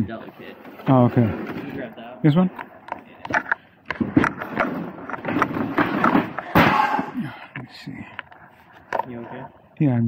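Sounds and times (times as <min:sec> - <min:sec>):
wooden pallets knocking and clattering: 0:03.3 - 0:07.2
pallet scraping clatter: 0:03.4 - 0:06.8.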